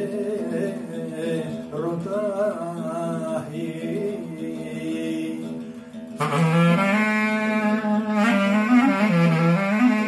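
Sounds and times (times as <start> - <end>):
acoustic guitar accompaniment: 0.0 - 10.0
clarinet folk melody: 6.1 - 10.0.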